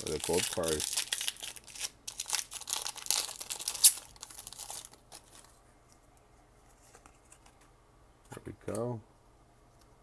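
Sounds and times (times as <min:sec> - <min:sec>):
foil wrapper tearing and crinkling: 0:00.0 - 0:05.5.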